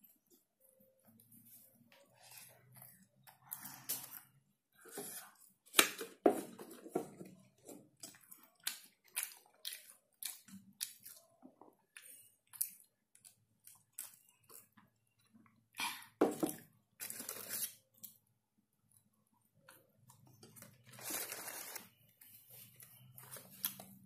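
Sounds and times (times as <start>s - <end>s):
chewing fries: 7.3s - 15.8s, 18.9s - 24.0s
paper pouch crinkling: 20.9s - 21.9s.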